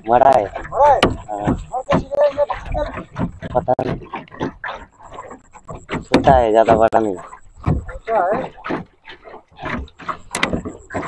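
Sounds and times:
man making wordless sounds: 0:03.5 - 0:03.9, 0:06.2 - 0:07.2
small knocks: 0:05.2 - 0:11.0.

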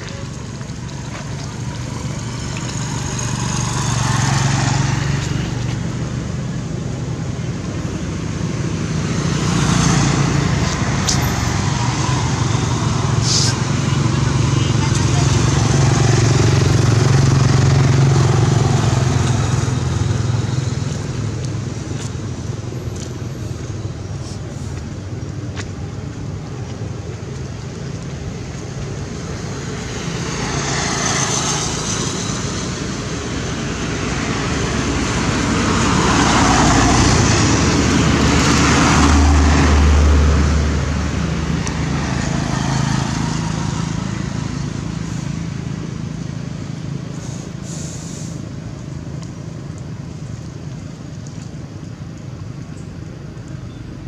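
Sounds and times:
traffic engine drone: 0:00.0 - 0:54.0
vehicles passing: 0:00.0 - 0:54.0.

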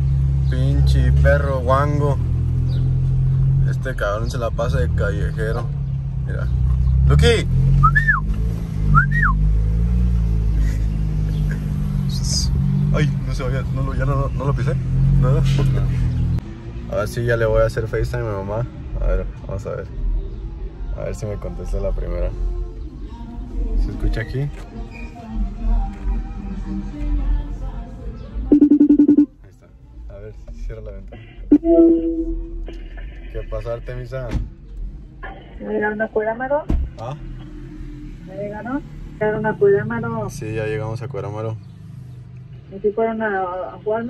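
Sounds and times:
car engine humming: 0:00.0 - 0:18.6, 0:22.4 - 0:44.0
whistles calling a dog: 0:07.8 - 0:08.3, 0:08.9 - 0:09.5
background music: 0:25.2 - 0:29.4
pulsing phone ringtone: 0:28.5 - 0:29.3.

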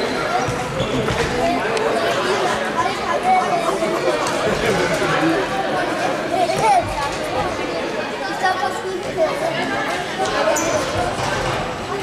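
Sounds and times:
children chattering in a hall: 0:00.0 - 0:12.0.

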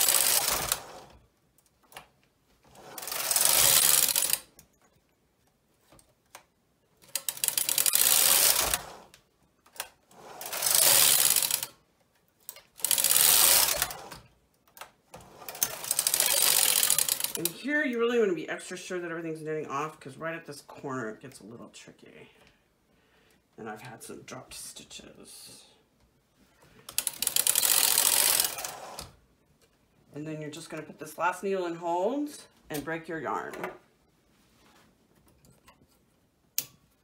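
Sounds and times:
knitting machine carriage rasping: 0:00.0 - 0:01.2, 0:02.6 - 0:04.6, 0:07.0 - 0:11.8, 0:12.4 - 0:17.6, 0:26.9 - 0:29.2.

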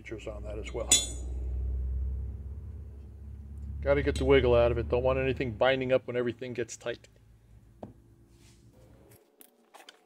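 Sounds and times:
low steady rumble: 0:00.0 - 0:08.8
metal casting clinking on plate: 0:00.7 - 0:01.3.

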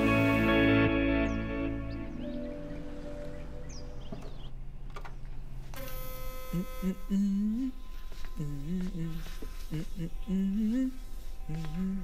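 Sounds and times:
electric buzz: 0:05.7 - 0:07.7
man humming: 0:06.3 - 0:12.0.

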